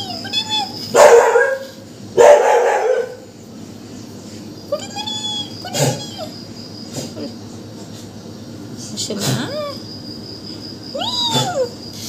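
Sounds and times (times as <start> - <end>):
crickets chirring: 0.0 - 12.0
kitten mewing: 4.7 - 7.2, 11.0 - 12.0.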